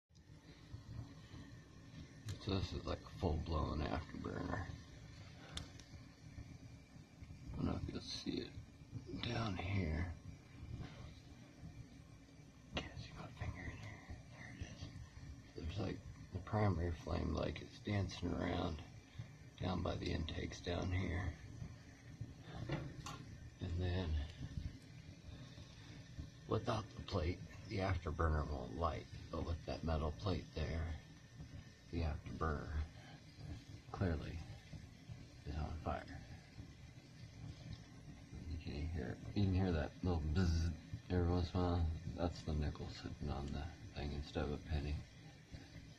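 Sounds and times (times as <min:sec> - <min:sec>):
stove flame low rumble: 0:00.2 - 0:45.9.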